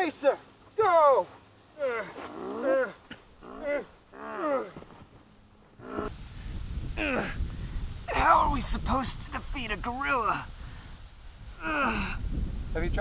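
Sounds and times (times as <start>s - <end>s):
man crying out loudly: 7.0s - 7.4s, 11.6s - 12.3s.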